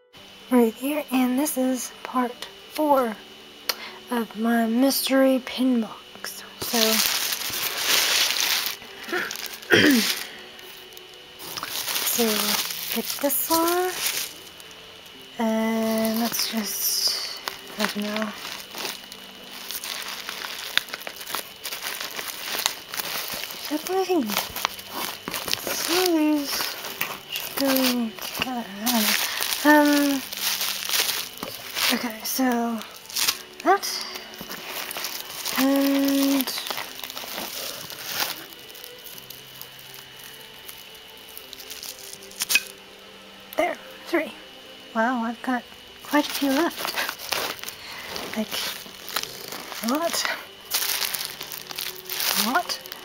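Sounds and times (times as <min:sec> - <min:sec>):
bubble wrap crackles: 0:00.6 - 0:43.6, 0:45.8 - 0:53.0
bubble wrap crinkling: 0:00.6 - 0:44.2, 0:45.6 - 0:53.0.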